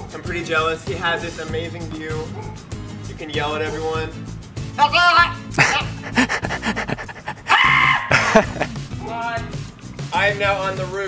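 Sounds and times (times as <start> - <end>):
background music: 0.0 - 11.0
man laughing: 5.5 - 8.8.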